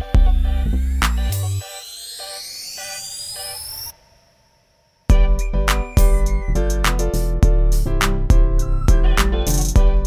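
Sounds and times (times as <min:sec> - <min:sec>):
rising synth sweep: 0:00.1 - 0:07.4.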